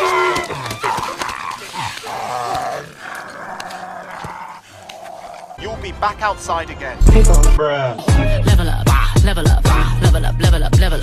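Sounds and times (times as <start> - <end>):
dog growling and snarling: 1.0 - 5.6.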